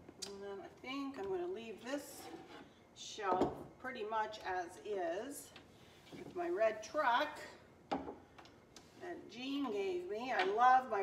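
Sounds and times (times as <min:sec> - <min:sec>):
woman speaking: 0:00.3 - 0:02.4, 0:03.0 - 0:05.6, 0:06.3 - 0:07.6, 0:09.0 - 0:11.0.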